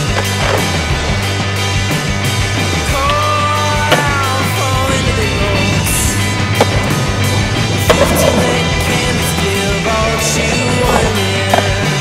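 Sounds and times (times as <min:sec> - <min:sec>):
skateboard hitting concrete: 0:00.0 - 0:01.2, 0:03.0 - 0:04.6, 0:06.5 - 0:07.0, 0:07.7 - 0:09.2, 0:10.4 - 0:12.0
skateboard landing on concrete: 0:00.0 - 0:01.2, 0:03.8 - 0:04.5, 0:06.5 - 0:07.0, 0:07.8 - 0:08.7, 0:10.5 - 0:12.0
rock music: 0:00.0 - 0:12.0.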